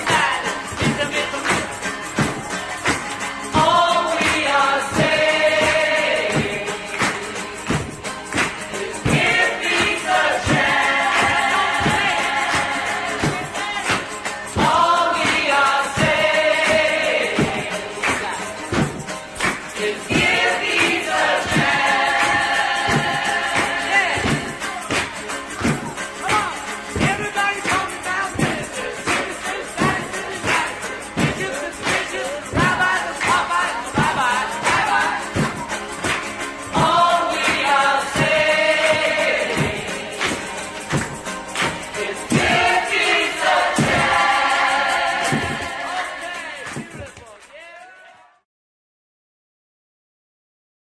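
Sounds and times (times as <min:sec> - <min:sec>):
band playing: 0:00.0 - 0:47.4
group of voices singing: 0:00.0 - 0:48.2.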